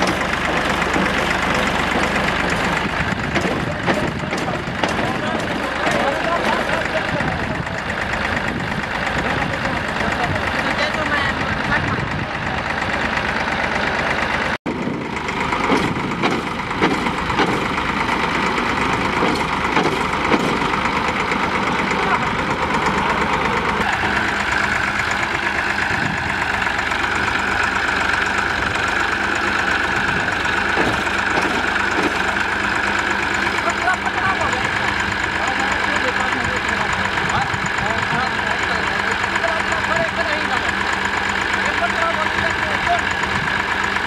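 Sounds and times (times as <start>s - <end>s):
tractor diesel engine running: 0.0s - 44.0s.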